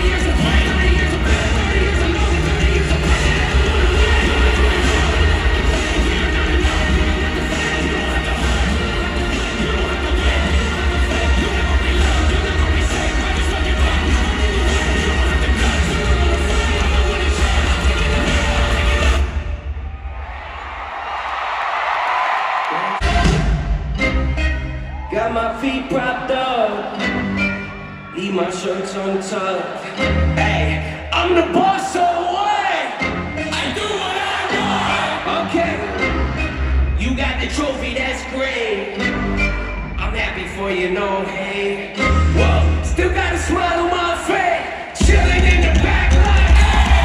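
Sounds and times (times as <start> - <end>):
live band music with heavy bass: 0.0 - 19.6, 23.0 - 28.7, 42.0 - 44.2, 45.0 - 47.0
crowd cheering and screaming: 0.0 - 23.8, 24.5 - 27.0, 44.3 - 47.0.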